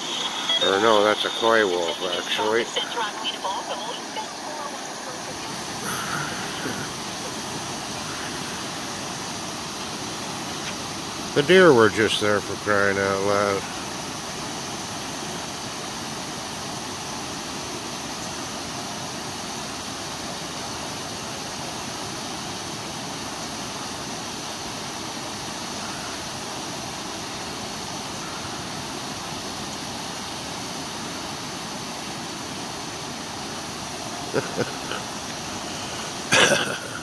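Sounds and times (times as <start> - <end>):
stream rushing over rocks: 0.0 - 37.0.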